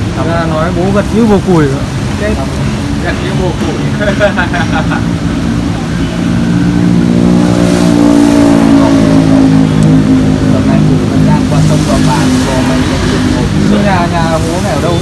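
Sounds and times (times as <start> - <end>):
vehicle engine running: 0.0 - 15.0.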